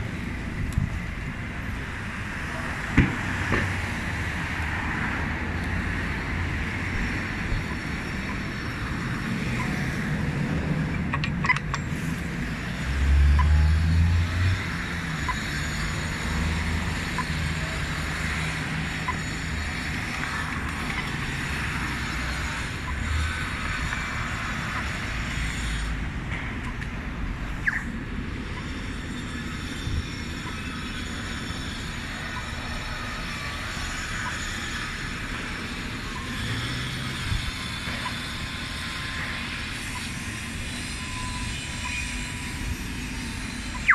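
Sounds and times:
cars passing: 0.0 - 43.9
vehicle rumbling by: 0.0 - 43.9.

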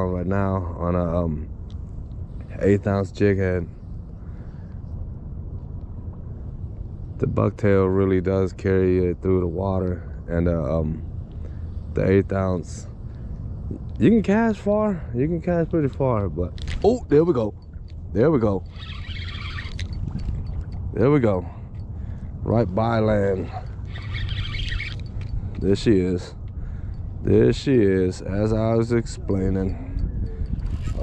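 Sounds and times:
wind rumble on microphone: 0.0 - 31.0
wind on microphone: 15.6 - 31.0
fishing reel buzzing: 18.6 - 20.8, 23.7 - 25.3, 30.5 - 31.0.

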